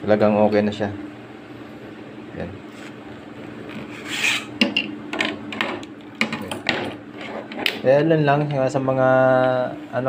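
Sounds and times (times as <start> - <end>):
steel coils scraping pipe and wood: 3.9 - 4.6.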